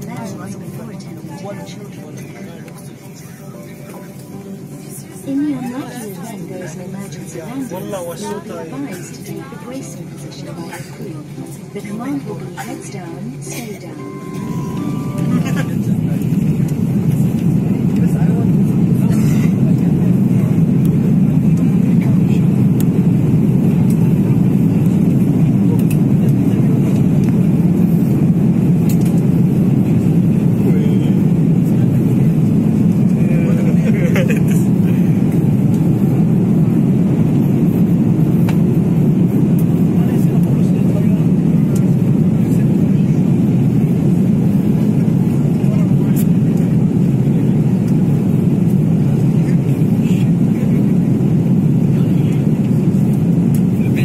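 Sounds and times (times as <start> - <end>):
jet engine takeoff roar in cabin: 0.0 - 54.0.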